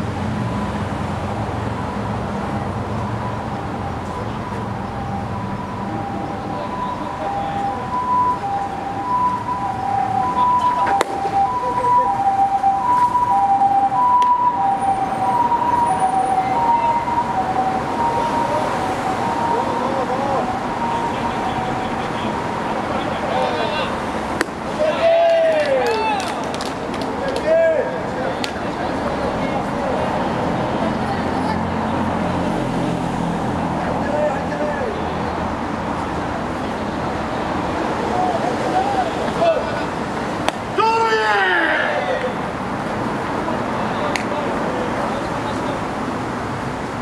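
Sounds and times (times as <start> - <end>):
two-tone siren: 1.4 - 24.0
voices calling out: 1.4 - 46.3.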